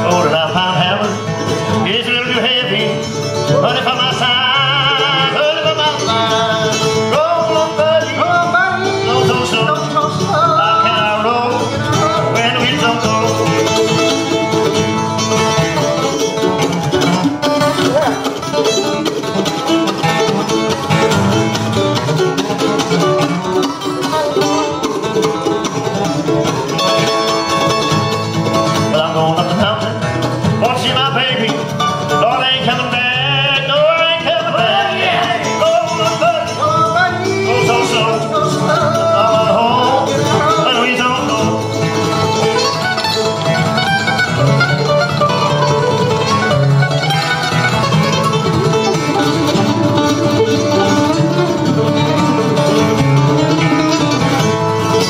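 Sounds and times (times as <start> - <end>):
acoustic guitar playing: 0.0 - 55.0
mandolin playing: 0.0 - 55.0.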